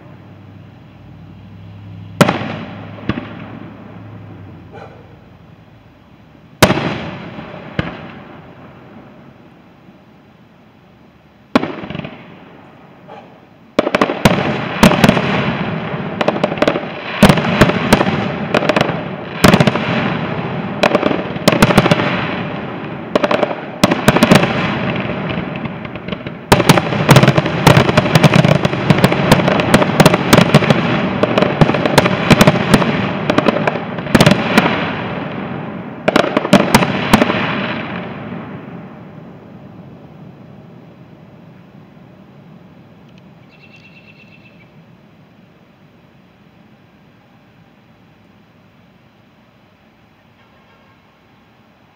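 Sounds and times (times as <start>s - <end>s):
firework bursts and crackling: 1.2s - 4.6s, 6.4s - 9.7s, 11.4s - 13.1s, 13.7s - 43.4s.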